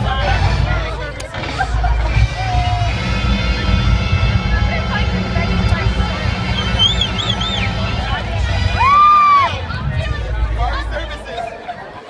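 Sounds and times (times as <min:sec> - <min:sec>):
music: 0:00.0 - 0:10.5
heavy low rumble: 0:00.0 - 0:11.6
crowd cheering and shouting: 0:00.0 - 0:12.0.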